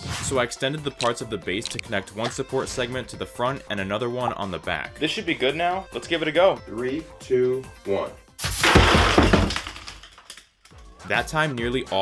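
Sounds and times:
plastic toy pieces crashing on wooden floor: 8.4s - 10.5s.

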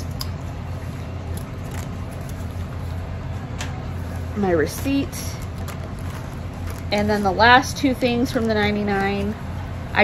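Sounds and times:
low background hum: 0.0s - 10.0s
packaged items clicking: 5.4s - 7.0s.

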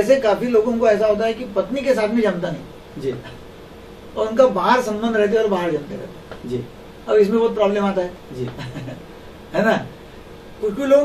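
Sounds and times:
man talking: 0.0s - 3.4s, 4.2s - 8.7s, 10.6s - 11.0s.

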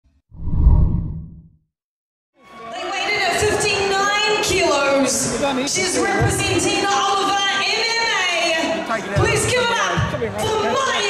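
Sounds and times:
deep whoosh: 0.4s - 1.5s.

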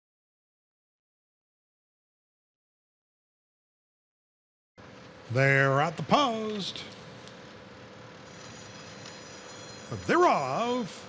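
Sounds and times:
low steady background noise: 4.8s - 11.0s.

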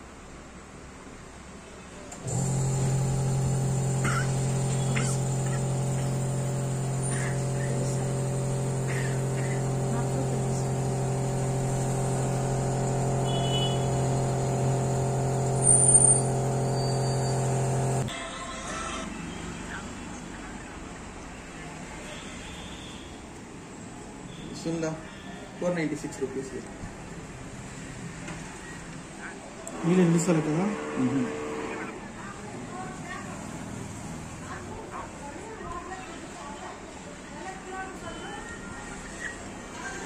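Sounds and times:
machine humming: 2.1s - 18.1s, 29.7s - 32.1s.

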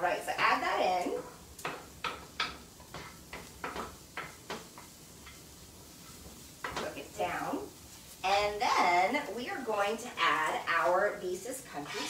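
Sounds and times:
utensil tapping a pan: 1.2s - 7.6s.

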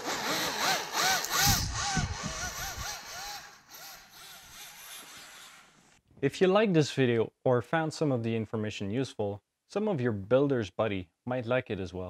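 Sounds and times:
electric motor whining: 0.0s - 5.7s.

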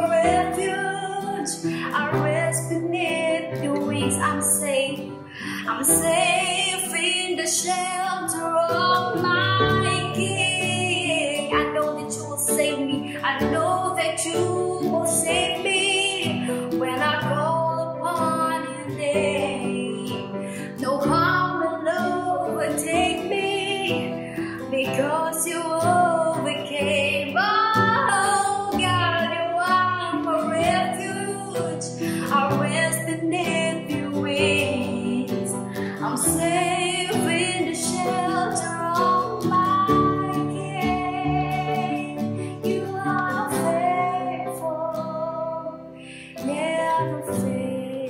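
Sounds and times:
keyboard: 0.0s - 48.0s
strummed acoustic guitar: 0.0s - 48.0s
woman singing: 0.0s - 48.0s.

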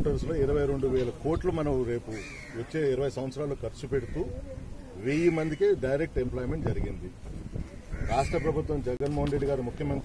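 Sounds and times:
man speaking: 0.0s - 7.2s
harsh bird call: 2.1s - 2.8s, 7.8s - 8.7s.

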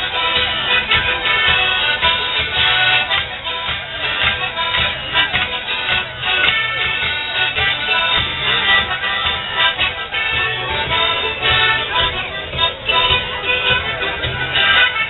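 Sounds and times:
accordion dance tune: 0.0s - 15.0s
steady beat: 0.0s - 15.0s.

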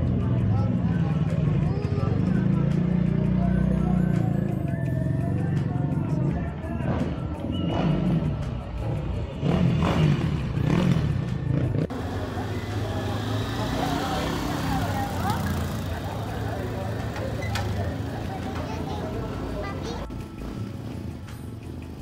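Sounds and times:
crowd chatter: 0.0s - 22.0s
steady engine hum: 0.0s - 22.0s
dirt bike engines revving: 6.8s - 19.8s.

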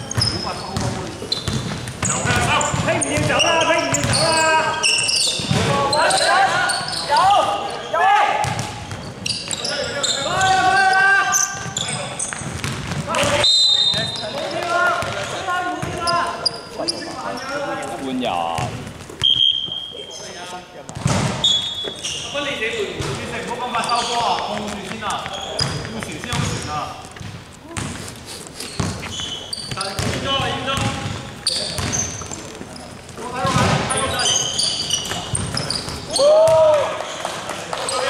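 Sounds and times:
basketball dribbling on wooden floor: 0.1s - 4.2s, 12.3s - 13.4s, 24.3s - 26.6s, 29.7s - 32.0s
people shouting: 36.1s - 37.0s.

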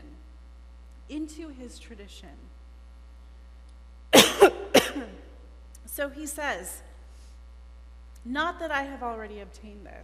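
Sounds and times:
woman coughing: 4.2s - 5.3s.

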